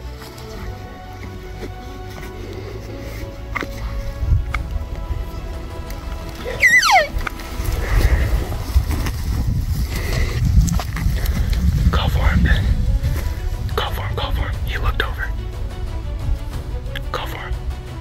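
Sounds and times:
faint background music: 0.0s - 18.0s
wind rumble on microphone: 0.0s - 18.0s
elk mew sliding down: 6.4s - 7.3s.

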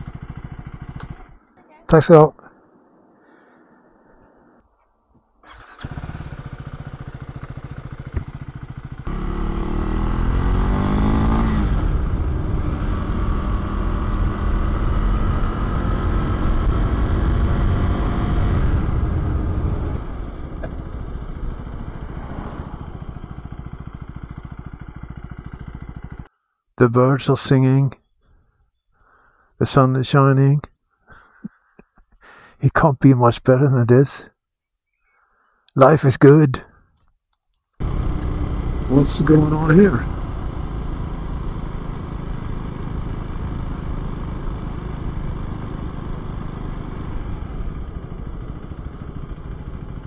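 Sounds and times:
motorcycle engine running: 0.0s - 1.5s, 5.5s - 26.3s, 37.8s - 50.0s.

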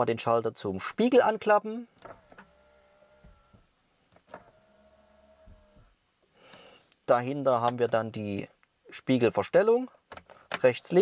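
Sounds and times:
door mirror motor hum: 2.0s - 6.0s.

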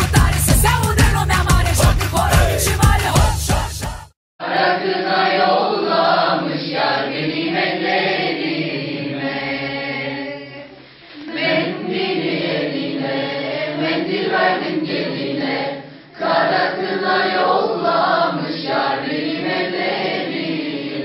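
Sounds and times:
group of teenagers singing: 0.0s - 21.0s.

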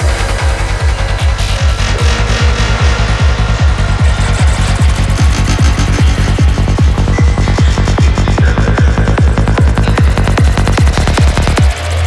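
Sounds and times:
kick drum: 0.0s - 11.8s
hi-hats ticking: 0.0s - 12.0s
pulsing bassline: 0.0s - 12.0s.

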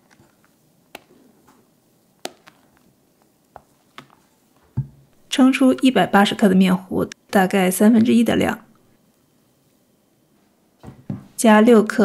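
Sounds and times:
spatula folding cake batter: 0.0s - 4.9s.

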